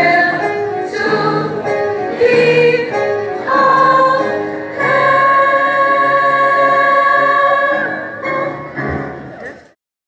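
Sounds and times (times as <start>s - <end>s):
group singing gospel song: 0.0s - 8.6s.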